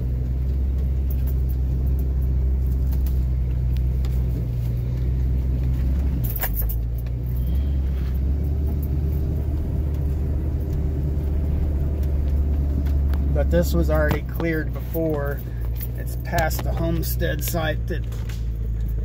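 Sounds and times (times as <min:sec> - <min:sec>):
vehicle engine running: 0:00.0 - 0:19.0.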